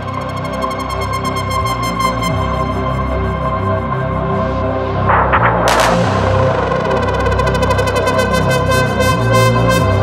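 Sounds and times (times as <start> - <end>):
low bass line: 4.7 - 9.0.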